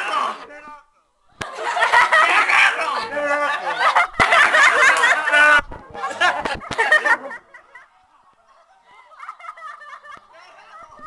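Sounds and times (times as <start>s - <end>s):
people laughing: 1.4s - 11.0s.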